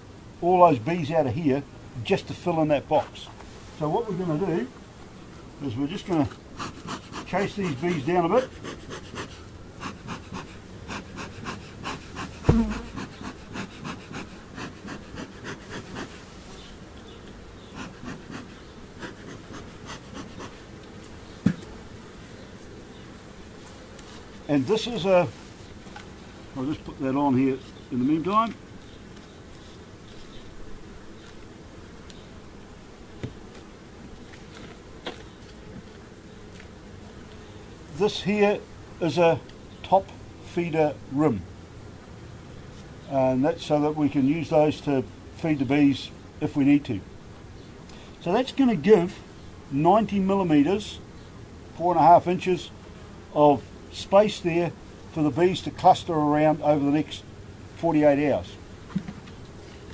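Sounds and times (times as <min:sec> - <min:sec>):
bee smoker bellows puffing: 0:00.1 - 0:59.9
knocks on wooden hive rim: 0:12.4 - 0:12.9, 0:21.4 - 0:21.7, 0:58.9 - 0:59.3.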